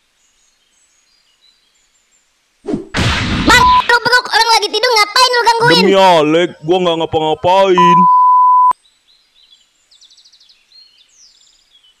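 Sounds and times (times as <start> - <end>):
high censor bleep: 3.5 - 3.8, 7.8 - 8.8.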